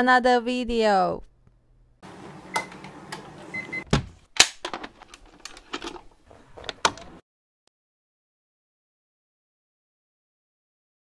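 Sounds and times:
mechanical clicks and clunks: 0:02.1 - 0:07.2.

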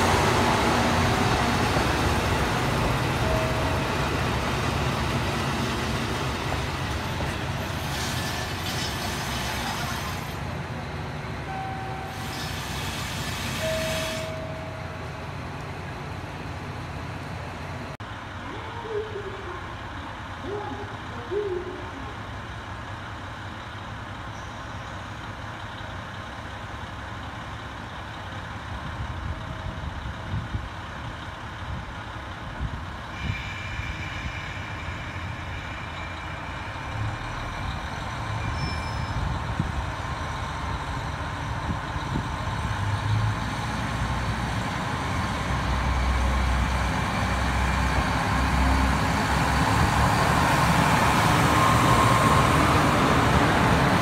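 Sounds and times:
diesel railcar engine throttling up: 0:00.0 - 0:54.0.

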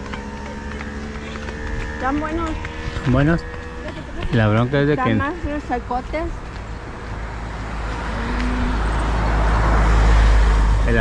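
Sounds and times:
vehicle approaching: 0:00.0 - 0:11.0.

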